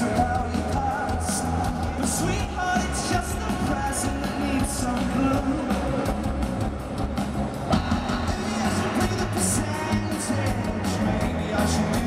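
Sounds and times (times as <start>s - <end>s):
indie rock band playing live: 0.0s - 12.0s.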